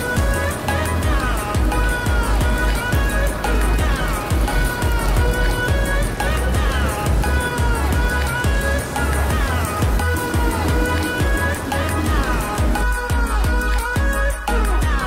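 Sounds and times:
pop song with heavy bass beat: 0:00.0 - 0:15.0.

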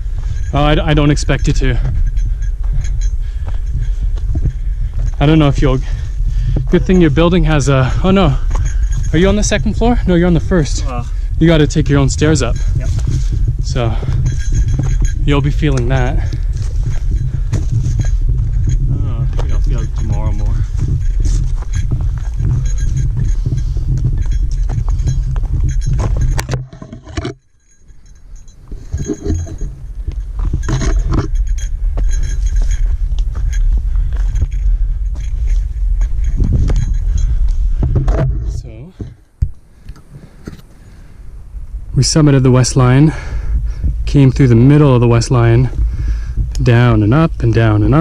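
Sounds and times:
gear clinking and jangling: 0:00.0 - 0:39.4, 0:41.8 - 0:48.0
footsteps on trail: 0:00.0 - 0:41.1, 0:43.1 - 0:48.0
wind rumble on microphone: 0:00.0 - 0:48.0.

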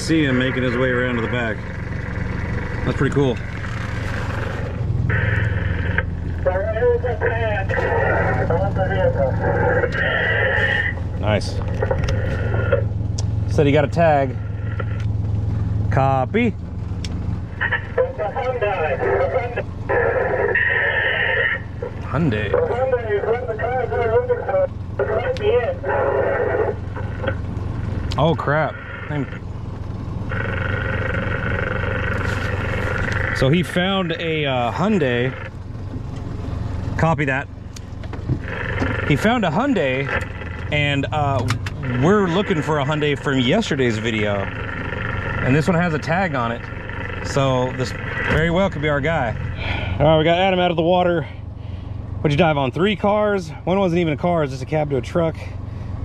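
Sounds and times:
steady low hum: 0:00.0 - 0:56.0
garbled voice through speaker: 0:05.1 - 0:11.6, 0:17.5 - 0:27.4, 0:28.2 - 0:29.4, 0:38.6 - 0:44.6.

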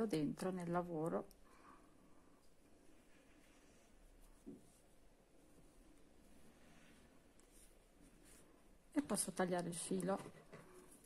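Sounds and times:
yarn rustling through stitches: 0:02.2 - 0:11.0.

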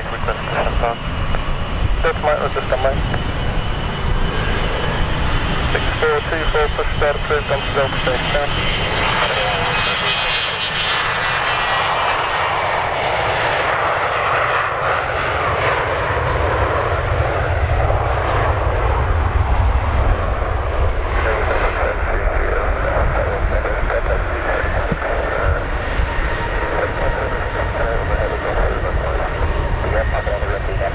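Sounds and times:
jet engines roaring at takeoff: 0:00.0 - 0:30.9.

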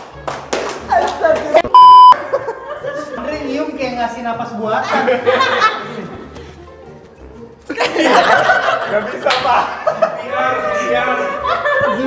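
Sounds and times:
men laughing: 0:02.2 - 0:03.2, 0:04.8 - 0:06.3, 0:07.7 - 0:12.0.

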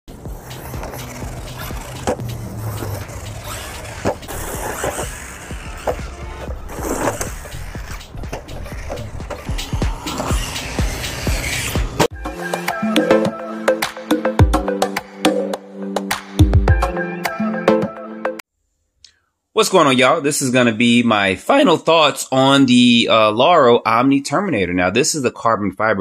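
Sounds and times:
rc truck motor and tyres on dirt: 0:00.1 - 0:12.1
sharp thumps of landings: 0:00.3 - 0:12.1.

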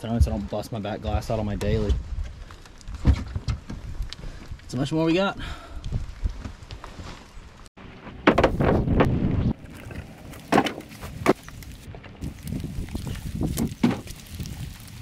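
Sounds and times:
firewood pieces clunking: 0:08.2 - 0:15.0
wind rushing over microphone: 0:08.4 - 0:09.8, 0:11.2 - 0:15.0.

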